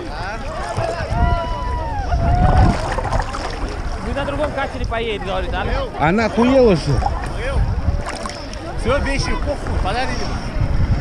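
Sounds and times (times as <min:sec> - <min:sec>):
wind on microphone: 0:00.0 - 0:11.0
sea water splashing: 0:02.2 - 0:05.4, 0:06.6 - 0:09.9.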